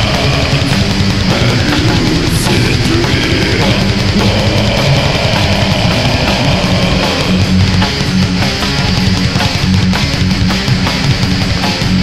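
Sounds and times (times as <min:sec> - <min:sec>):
death metal band playing: 0:00.0 - 0:12.0.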